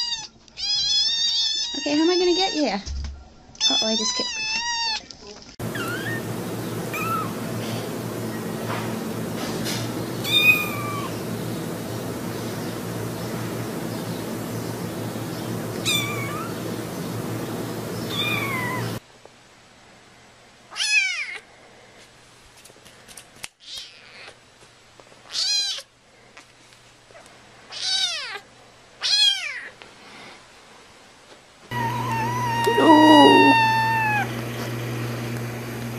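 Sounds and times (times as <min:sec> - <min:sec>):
cat meowing: 0:00.0 - 0:02.6, 0:03.6 - 0:05.0, 0:05.7 - 0:06.2, 0:06.9 - 0:07.4, 0:10.2 - 0:11.2, 0:15.8 - 0:16.6, 0:18.1 - 0:19.0, 0:20.7 - 0:21.4, 0:25.3 - 0:25.9, 0:27.7 - 0:28.4, 0:29.0 - 0:29.7, 0:31.7 - 0:34.3
steady hum: 0:05.6 - 0:19.0, 0:31.7 - 0:35.9.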